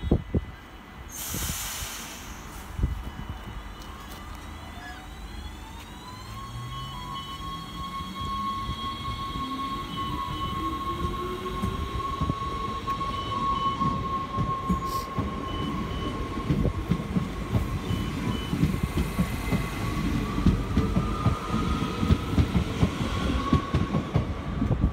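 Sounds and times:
wheel and rail rumble: 0.0s - 24.9s
electric train motor whine: 2.7s - 23.5s.

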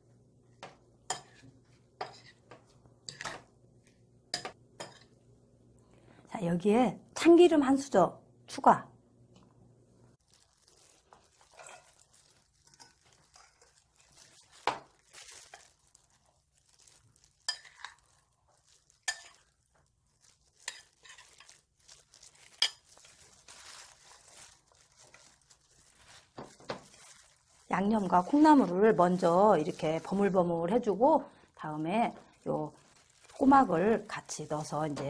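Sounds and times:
soft rustling: 10.1s - 35.0s
spoon stirring sauce in bowl: 17.4s - 18.0s, 19.0s - 19.5s.

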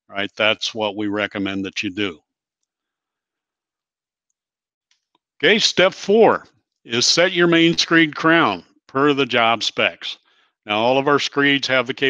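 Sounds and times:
man speaking: 0.0s - 2.2s, 5.4s - 12.0s.

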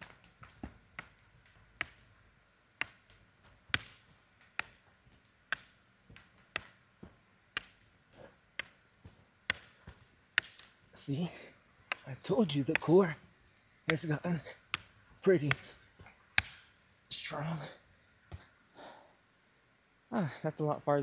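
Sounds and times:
palms slapping wooden floor: 2.8s - 10.8s.

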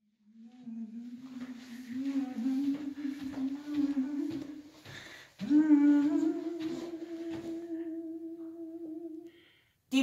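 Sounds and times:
woman humming a long note: 5.4s - 9.3s.

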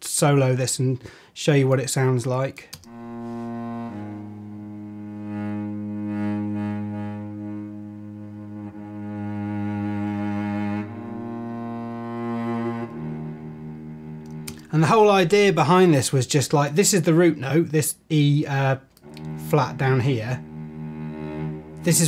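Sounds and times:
slow bowed cello notes: 2.8s - 15.6s, 17.2s - 22.0s.

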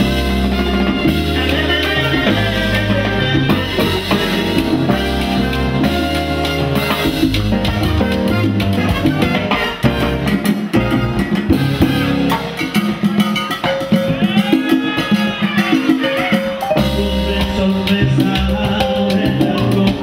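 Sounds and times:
congas and timbales: 0.0s - 20.0s
live salsa band playing: 0.0s - 20.0s.

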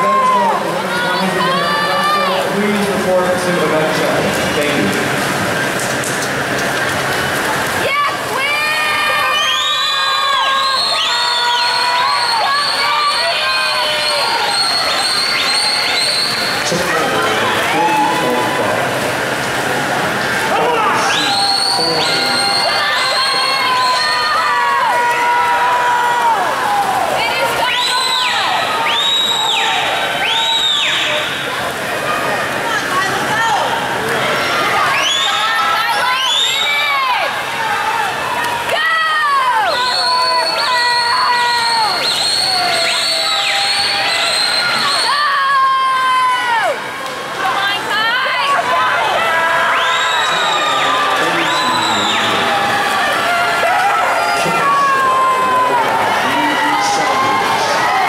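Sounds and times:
crowd cheering and yelling: 0.0s - 58.0s
swimmers splashing: 0.0s - 58.0s.

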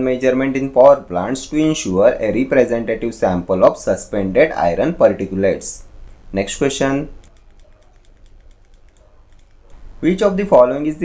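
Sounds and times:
faint computer clicks: 7.2s - 9.8s.

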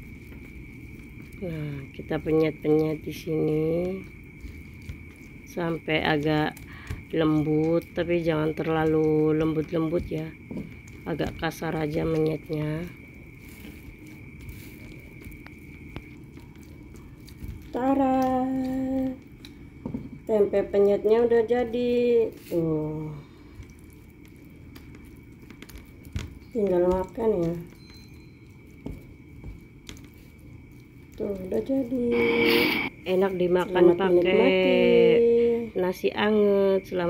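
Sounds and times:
pestle squishing food: 0.0s - 20.2s, 23.4s - 32.7s.

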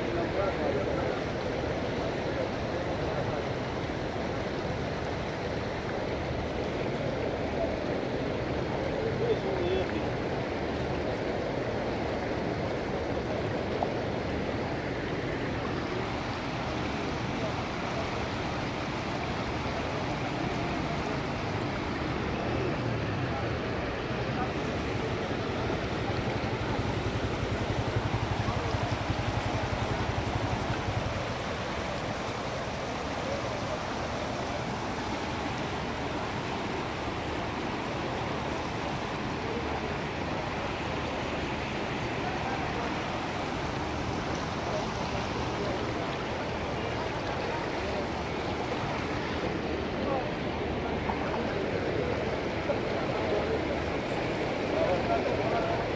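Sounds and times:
floodwater rushing: 0.0s - 55.9s.

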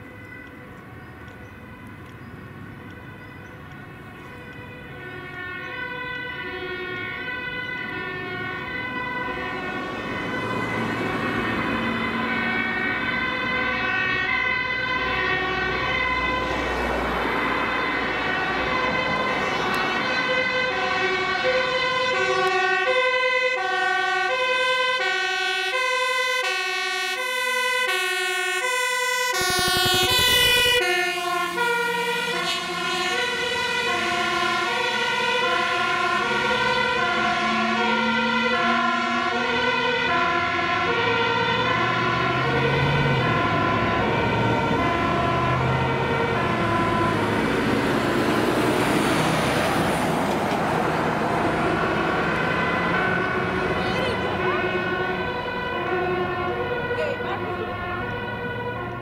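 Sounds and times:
diesel engine: 0.0s - 59.0s
truck passing rush: 0.0s - 59.0s
two-tone fire engine siren: 0.0s - 59.0s.

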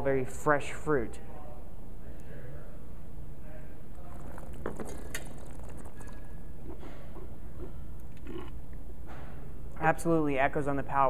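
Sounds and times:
steady low hum: 0.0s - 11.0s
wine sipping and swishing in mouth: 4.0s - 7.8s
spitting into metal bucket: 4.1s - 7.1s.

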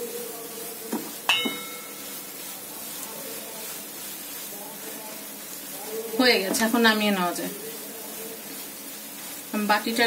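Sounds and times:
low frying noise: 0.0s - 10.0s
spatula scraping frying pan: 0.0s - 10.0s
spatula clinking against pan: 1.3s - 2.2s.

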